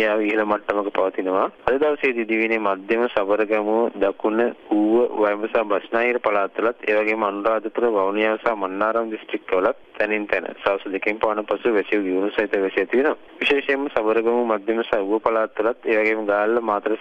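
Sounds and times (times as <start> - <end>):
man talking over telephone: 0.0 - 17.0.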